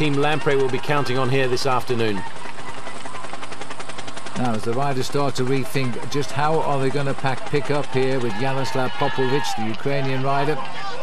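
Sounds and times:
commentator speaking: 0:00.0 - 0:02.3, 0:04.4 - 0:11.0
race vehicle engines droning: 0:00.0 - 0:03.4, 0:04.3 - 0:11.0.

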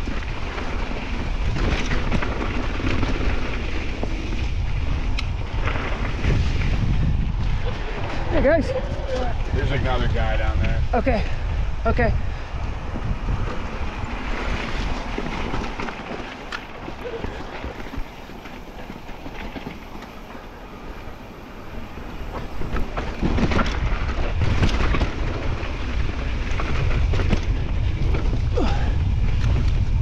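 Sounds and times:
tyres rolling over dirt and stones: 0:00.0 - 0:10.9, 0:12.8 - 0:30.0
bike rattling and knocking: 0:00.0 - 0:30.0
wind rushing over microphone: 0:00.0 - 0:30.0.

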